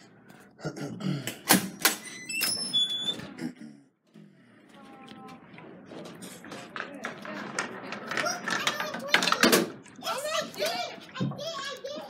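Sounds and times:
short high-pitched squeak: 2.3 - 3.2.

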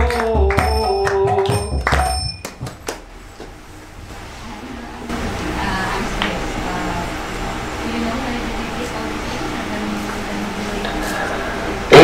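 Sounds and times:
person singing long notes: 0.0 - 1.8
drum beats: 0.0 - 3.1.

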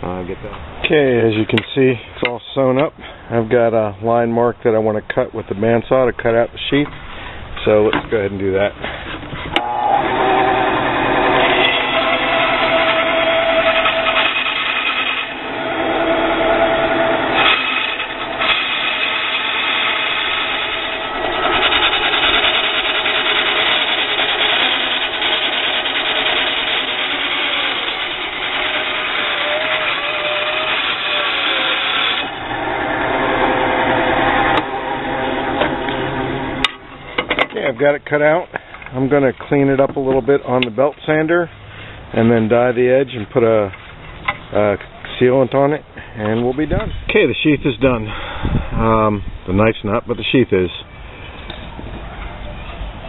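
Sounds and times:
bandsaw cutting leather: 9.6 - 36.8.

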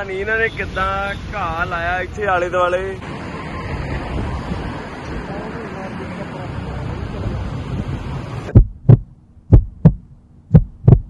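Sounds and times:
steady rushing noise: 0.0 - 11.0
heartbeat thumps: 8.5 - 11.0.

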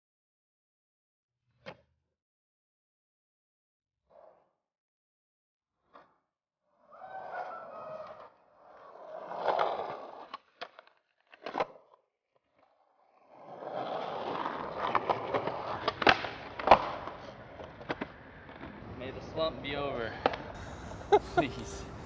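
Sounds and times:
skateboard wheels rolling on concrete: 6.8 - 22.0
skateboard clacking on ground: 13.4 - 18.8.

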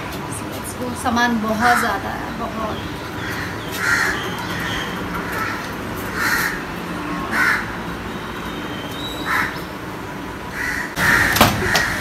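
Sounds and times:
crow cawing: 3.2 - 6.6, 7.3 - 7.7, 9.3 - 9.7, 10.5 - 12.0.

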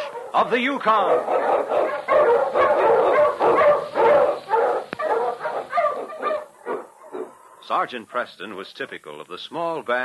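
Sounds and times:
dog barking rapidly: 0.0 - 7.4.

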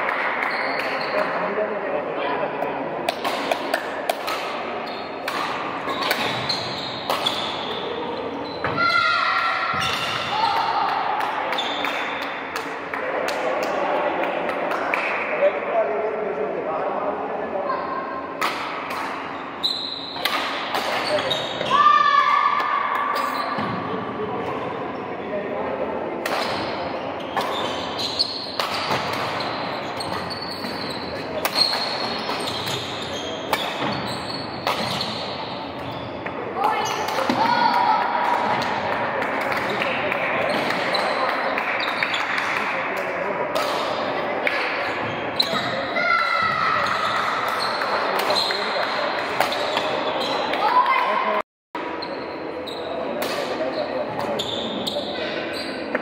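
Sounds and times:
racquets hitting shuttlecock: 3.0 - 7.6, 34.6 - 35.2
shoes squeaking on wooden floor: 5.8 - 8.8, 29.2 - 36.2.

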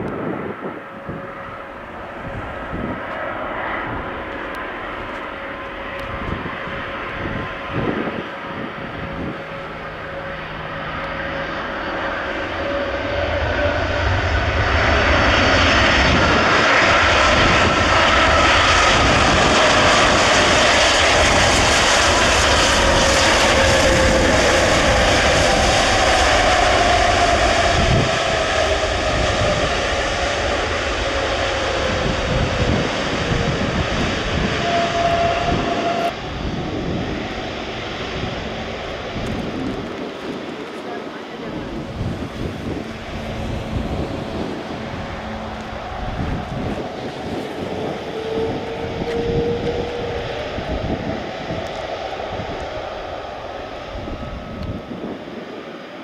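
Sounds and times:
jet engines roaring on landing: 0.0 - 56.0
whining tones gliding down: 0.0 - 56.0.

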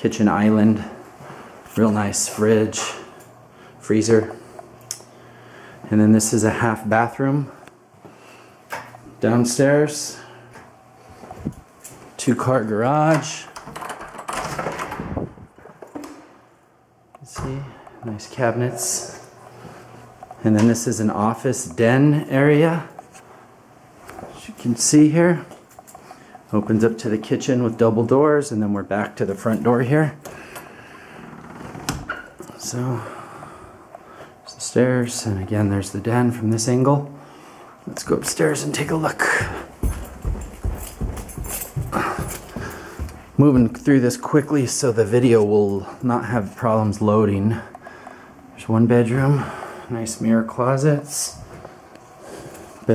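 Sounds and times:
breathing close to microphone: 4.4 - 5.9, 30.3 - 31.4, 37.2 - 37.8, 41.8 - 43.3, 47.6 - 48.5
footsteps on carpeted stairs: 38.6 - 43.9
door knocking open: 39.4 - 42.1.

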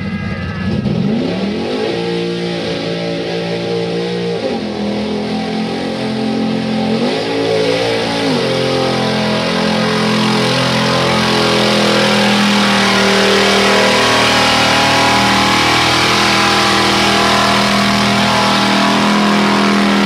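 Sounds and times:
truck engine revving hard: 0.0 - 20.0
truck churning through mud: 0.9 - 20.0.

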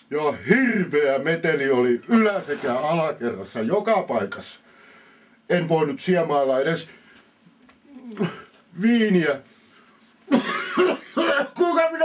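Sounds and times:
man speaking: 0.1 - 4.6, 5.5 - 7.0, 7.9 - 9.5, 11.2 - 12.0.

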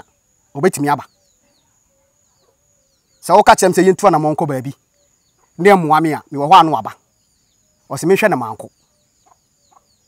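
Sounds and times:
faint steady high tone: 0.0 - 10.0
high falling bird chirps: 0.0 - 10.0.

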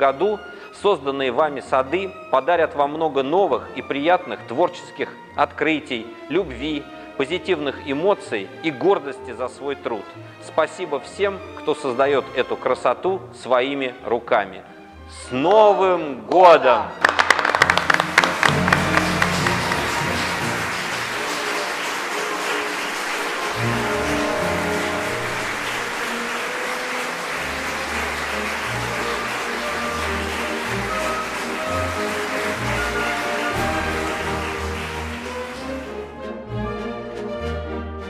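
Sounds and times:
instrumental music: 16.9 - 38.0
audience applauding: 17.0 - 36.1.

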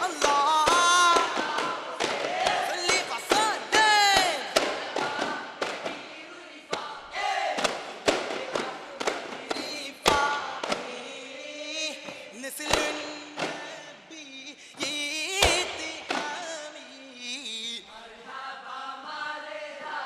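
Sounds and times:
frame drums slapped by hand: 0.0 - 6.1, 7.5 - 11.0
group singing and chanting: 0.0 - 20.0.

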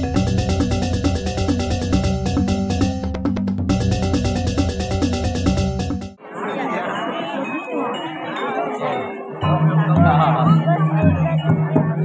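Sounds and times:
crowd chatter: 6.2 - 12.0.

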